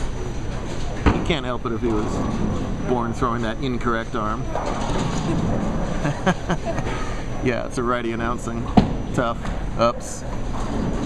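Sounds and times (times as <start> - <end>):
rumble from bowling lanes: 0.0 - 7.5, 8.2 - 11.0.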